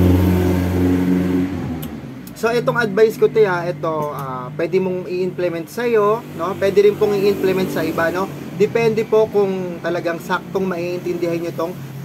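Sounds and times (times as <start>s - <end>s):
low motor hum: 0.0s - 4.6s.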